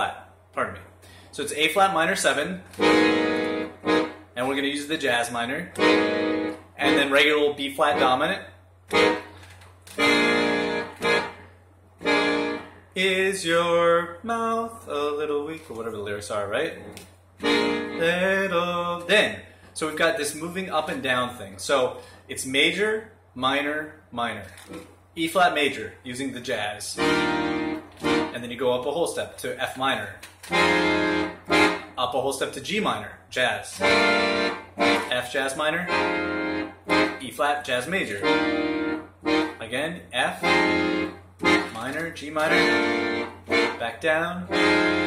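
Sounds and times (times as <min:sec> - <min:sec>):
accordion chords: 0:01.6 - 0:15.2, 0:16.4 - 0:22.2, 0:26.9 - 0:28.7, 0:30.4 - 0:32.2, 0:33.7 - 0:45.0.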